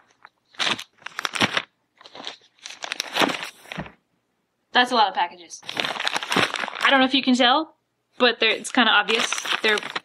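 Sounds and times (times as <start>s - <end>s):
plastic bags crinkling: 0.0s - 3.9s, 5.6s - 7.2s, 8.4s - 10.0s.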